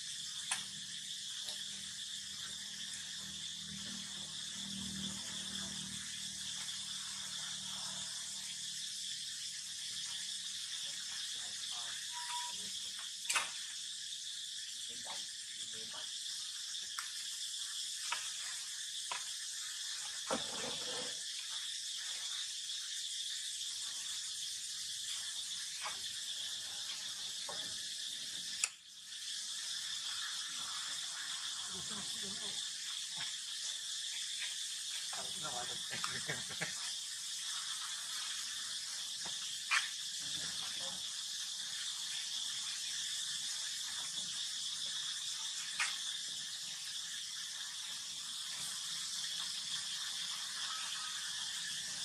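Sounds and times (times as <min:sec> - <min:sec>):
high-pitched insect drone: 0:00.0 - 0:52.0
steady high hiss: 0:00.0 - 0:52.0.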